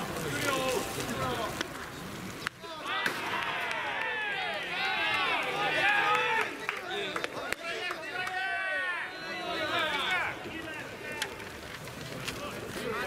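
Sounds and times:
men shouting: 0:02.6 - 0:10.6.

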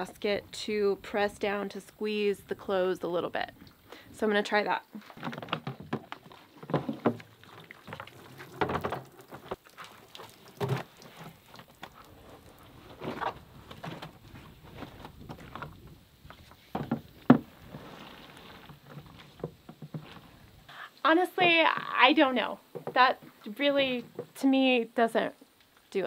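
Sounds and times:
plastic bucket knocks: 0:08.6 - 0:09.1.

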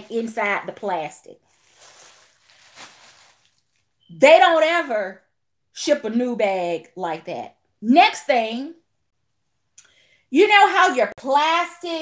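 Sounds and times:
plastic bag crinkling: 0:01.5 - 0:03.9.

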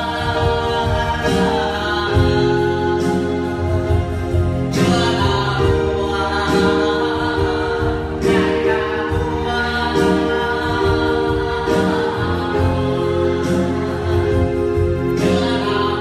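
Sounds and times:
electronic keyboard chords: 0:00.0 - 0:16.0
group singing worship song: 0:00.0 - 0:16.0
man singing into microphone: 0:00.0 - 0:16.0.

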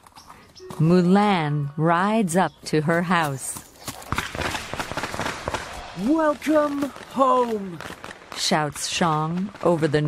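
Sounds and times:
firecrackers cracking and popping: 0:04.0 - 0:10.0
crackling hiss: 0:04.1 - 0:09.8.

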